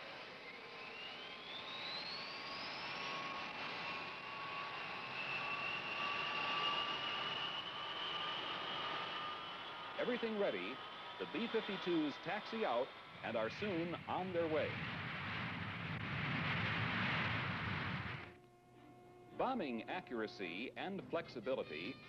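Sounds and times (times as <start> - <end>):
jet engines spooling up: 0.0 - 22.0
low steady tone: 18.0 - 21.9.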